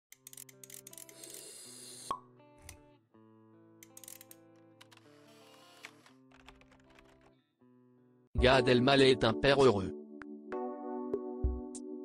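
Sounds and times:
intro music with held notes: 7.7 - 12.0.

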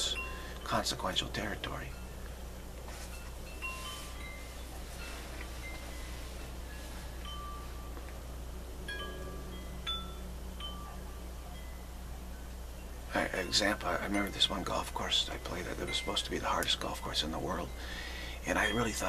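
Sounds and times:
steady low hum: 0.0 - 19.0
wind chimes ringing: 0.0 - 19.0.

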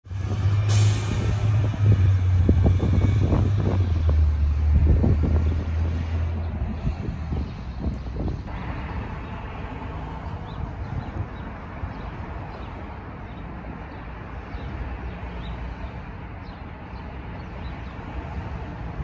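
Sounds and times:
bus engine humming: 0.1 - 19.0
wind buffeting microphone: 0.1 - 19.0.

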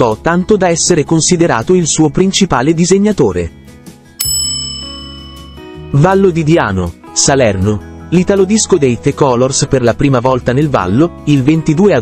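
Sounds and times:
bell-like chime: 4.2 - 6.4.

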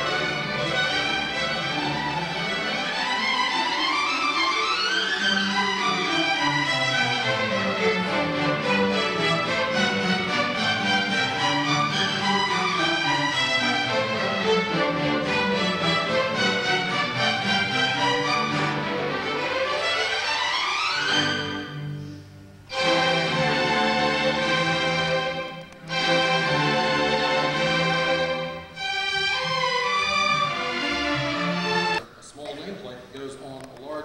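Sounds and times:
string orchestra playing: 0.0 - 32.0.

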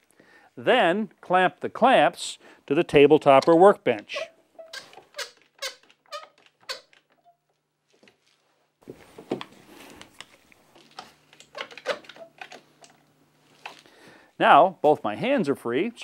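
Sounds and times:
squeaky ratchet clicks: 4.1 - 7.4.

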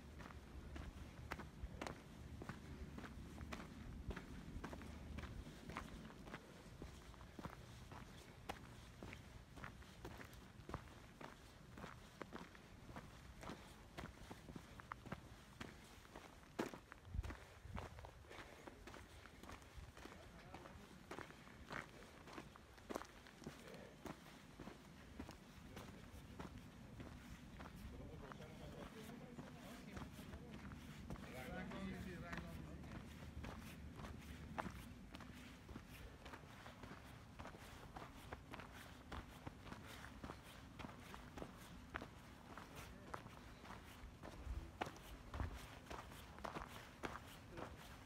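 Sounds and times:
footsteps on gravel trail: 0.0 - 48.0.

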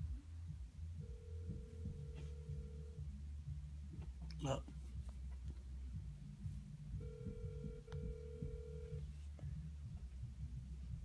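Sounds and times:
telephone ringback tone: 1.0 - 3.0, 7.0 - 9.1.

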